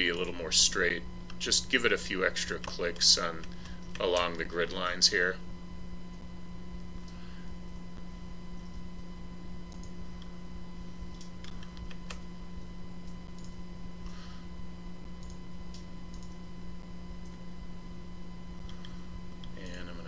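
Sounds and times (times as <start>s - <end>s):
low electrical hum: 0.0s - 20.0s
computer mouse clicking: 3.4s - 4.3s, 9.7s - 10.3s, 11.1s - 12.2s, 13.0s - 13.6s, 15.2s - 16.4s, 18.6s - 19.8s.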